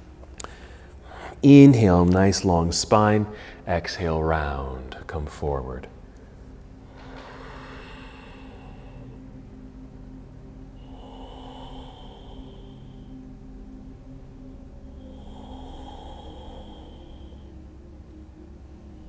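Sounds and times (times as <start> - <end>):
faint low drone: 0.0 - 19.0
man breathing deeply: 0.4 - 1.4, 3.3 - 3.7, 6.0 - 19.0.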